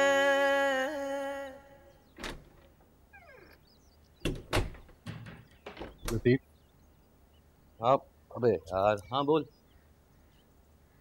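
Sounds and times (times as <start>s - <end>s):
door knocks and clunks: 2.2s - 2.8s, 4.2s - 6.3s
door creaking on hinges: 2.2s - 3.6s, 4.2s - 6.3s.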